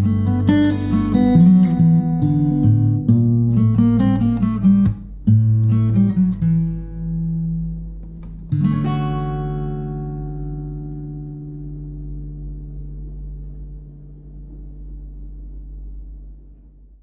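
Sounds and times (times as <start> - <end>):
acoustic guitar chord ringing: 0.0 - 17.0.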